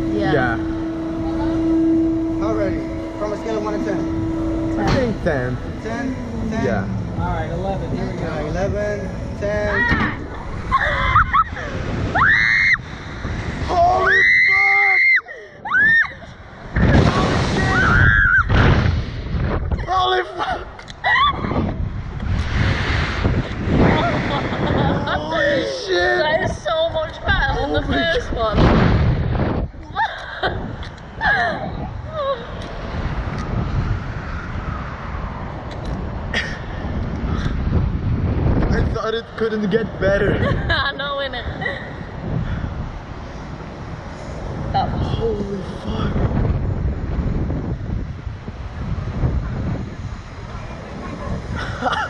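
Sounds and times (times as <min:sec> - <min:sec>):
steady low rumble: 0:00.0 - 0:52.0
wind rushing over microphone: 0:00.0 - 0:52.0
people screaming: 0:09.7 - 0:18.6, 0:19.8 - 0:21.8.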